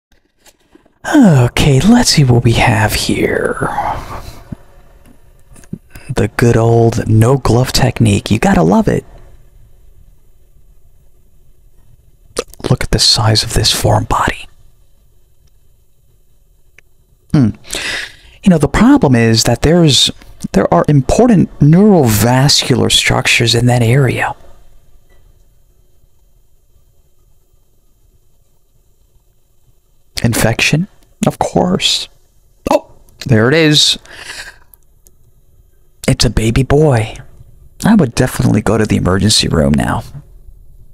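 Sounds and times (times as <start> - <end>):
soft exhale into microphone: 3.6 - 4.8, 17.6 - 18.4.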